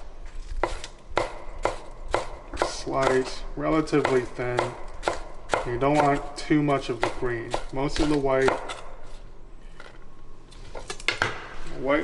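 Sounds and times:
knife chopping on wooden board: 0.5 - 3.3, 3.9 - 6.3, 6.9 - 9.2.

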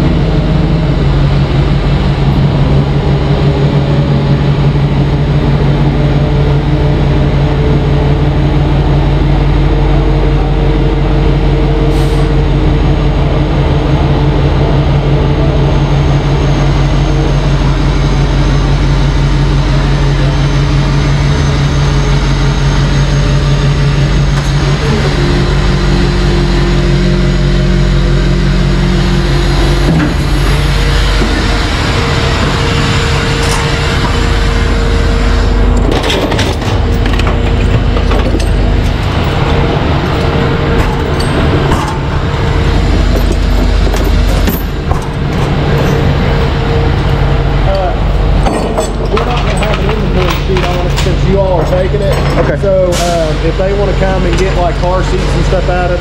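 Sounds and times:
diesel engine running in a tunnel: 0.0 - 56.0
chains clinking on steel deck: 43.1 - 46.2.

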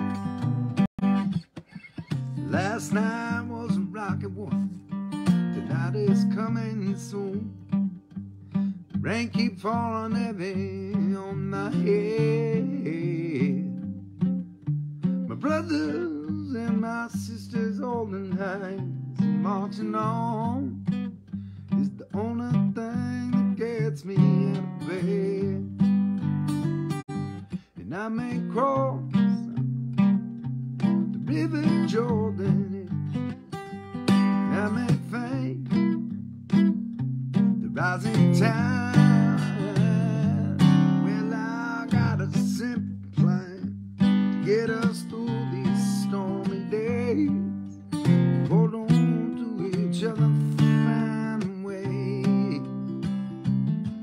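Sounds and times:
acoustic guitar strumming: 0.0 - 54.0
man singing: 2.2 - 7.7, 8.9 - 14.0, 15.3 - 21.0, 21.7 - 25.9, 27.5 - 29.6, 30.8 - 36.6, 37.6 - 53.1.

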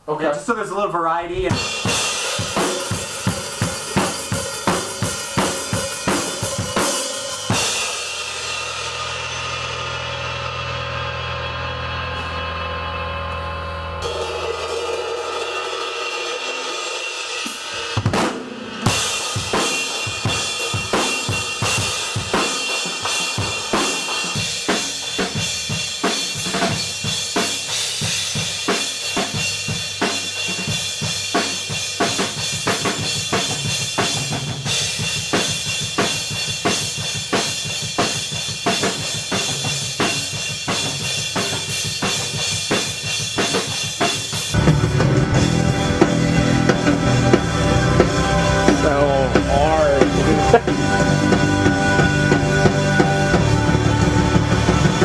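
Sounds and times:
drum kit rock beat: 0.0 - 12.4, 14.0 - 55.0
ringing cymbal: 1.6 - 18.0
electric bass playing: 7.5 - 15.3, 44.5 - 55.0.

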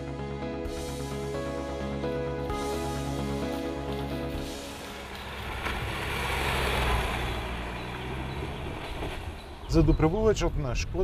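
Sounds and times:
background music: 0.0 - 8.3
car driving past on rough road: 4.0 - 9.9.

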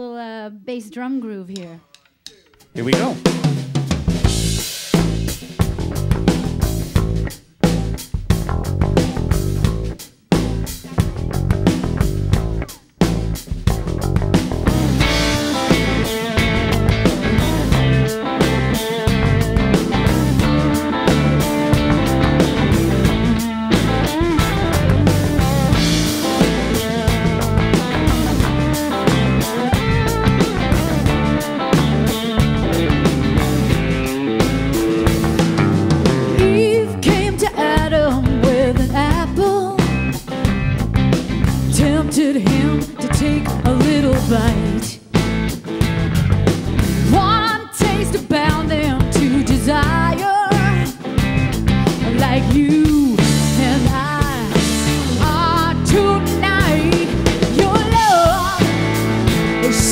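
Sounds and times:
bass drum groove: 2.0 - 59.9
blues-rock band playing: 2.4 - 59.9
electric guitar: 4.0 - 59.9.

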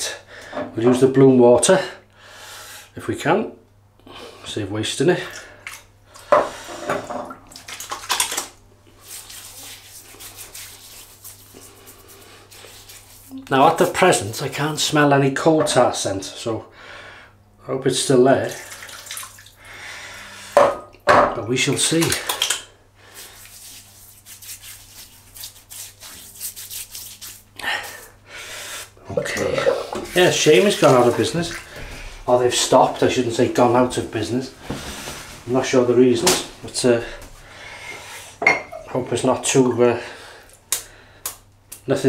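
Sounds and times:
palms rubbing wet face: 7.5 - 14.7, 21.7 - 38.3
water trickling: 18.4 - 19.7.

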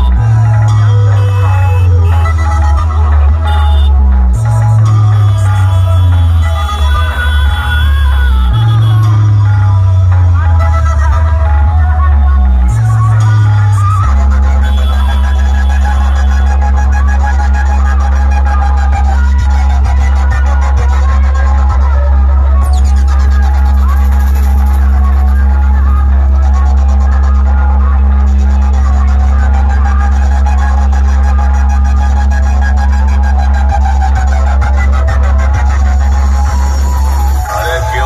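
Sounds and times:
deep steady bass: 0.0 - 38.0
loud electronic music: 0.0 - 38.0.

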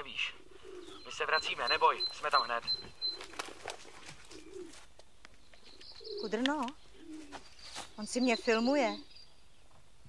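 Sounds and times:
bird cooing: 0.0 - 4.9, 5.7 - 7.6.

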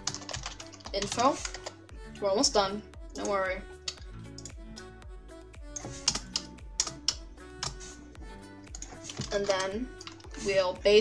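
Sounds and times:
typing on computer keyboard: 0.0 - 1.8, 5.8 - 7.8, 8.7 - 10.3
soft background music: 0.0 - 11.0.

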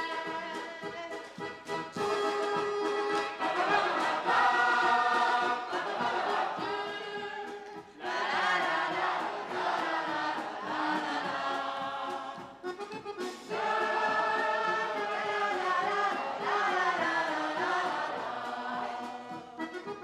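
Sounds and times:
music with choir singing: 0.0 - 20.0.

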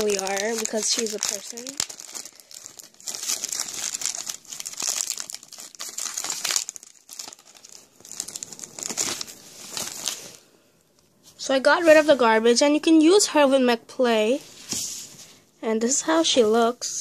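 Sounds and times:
plastic bag crinkling: 0.0 - 10.4.

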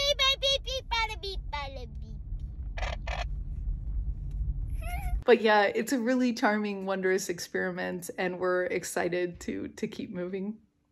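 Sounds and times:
child squealing: 4.8 - 5.2.

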